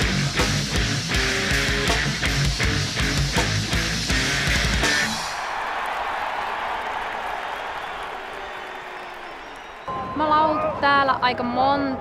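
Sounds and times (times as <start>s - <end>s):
live rock band: 0.0s - 5.3s
crowd cheering and applauding: 4.2s - 12.0s.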